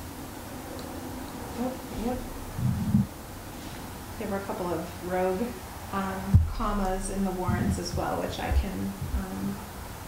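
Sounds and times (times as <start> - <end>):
person humming: 7.4 - 8.1.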